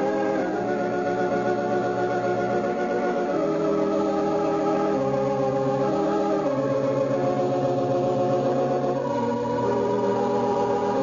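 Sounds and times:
organ playing sustained chords: 0.0s - 11.0s.

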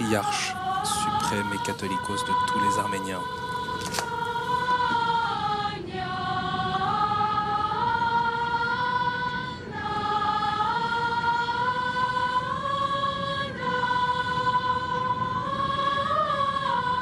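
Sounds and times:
choir singing in unison: 0.0s - 17.0s.

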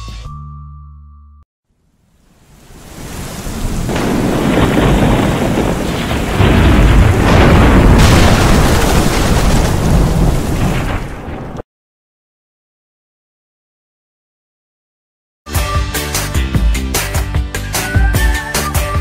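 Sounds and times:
heavy rain: 2.3s - 11.6s
rolling thunder: 2.9s - 11.6s.

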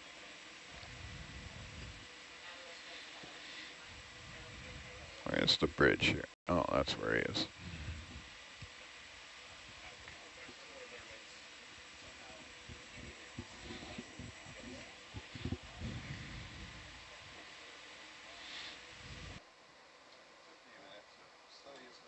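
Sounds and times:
murmur of distant voices: 0.0s - 19.4s
steady hiss: 0.0s - 19.5s
thin electrical hum: 0.0s - 21.9s.

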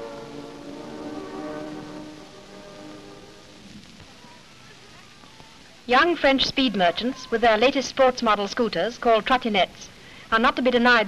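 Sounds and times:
slow music of held chords: 0.0s - 3.9s.

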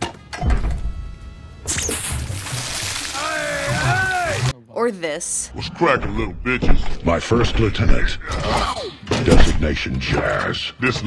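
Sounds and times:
orchestral music: 0.0s - 5.0s.

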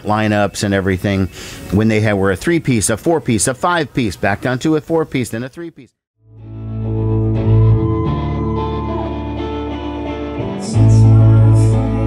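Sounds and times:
bass guitar: 6.2s - 12.0s
electric guitars: 6.4s - 12.0s.

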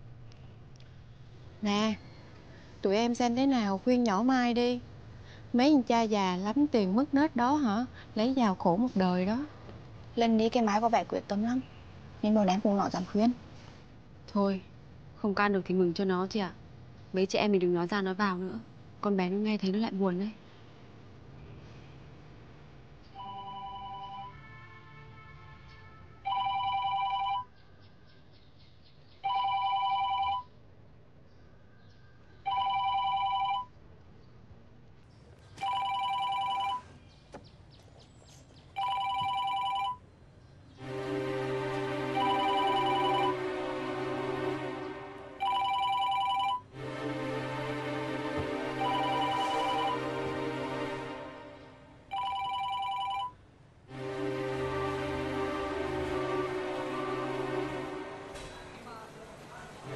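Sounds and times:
two-tone phone ringing: 23.2s - 24.4s, 26.3s - 27.5s, 29.3s - 30.5s, 32.5s - 33.7s, 35.6s - 36.9s, 38.8s - 40.0s, 42.2s - 43.4s, 45.4s - 46.8s, 48.8s - 50.0s, 52.1s - 53.4s.

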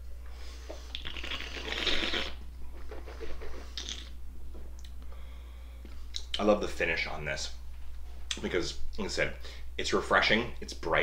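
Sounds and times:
person slurping wine: 0.9s - 2.4s
airy breath: 5.1s - 5.9s.

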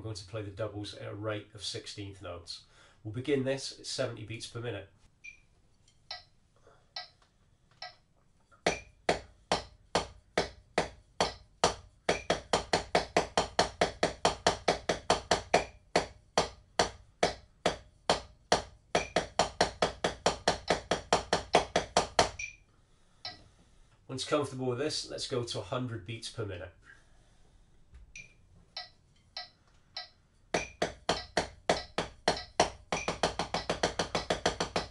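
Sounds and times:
drumsticks on rubber practice pad: 7.0s - 22.6s, 28.2s - 34.9s.

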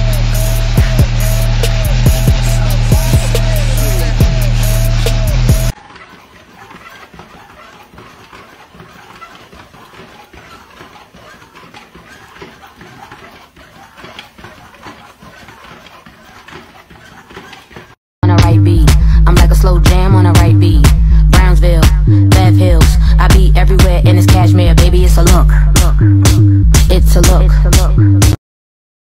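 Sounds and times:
loud music: 0.0s - 5.8s, 18.2s - 28.4s
dog paws pattering on slats: 5.8s - 18.0s.

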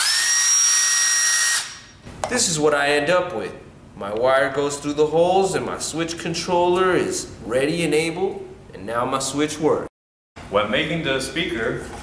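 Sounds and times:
cordless drill whining: 0.0s - 1.9s.

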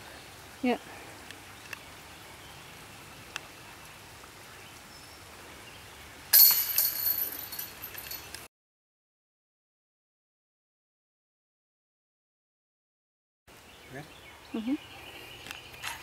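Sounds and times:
disc striking basket: 6.4s - 8.3s
steel chains jangling: 6.4s - 8.4s.

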